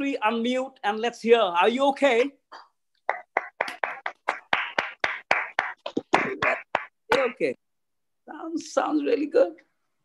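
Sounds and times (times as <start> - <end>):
hand claps over video call: 2.1 - 7.4.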